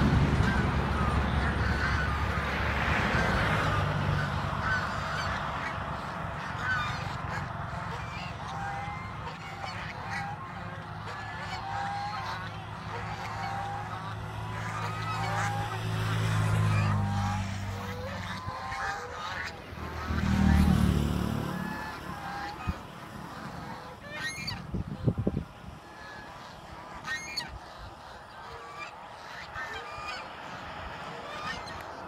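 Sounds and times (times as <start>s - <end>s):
geese honking: 0.0s - 32.0s.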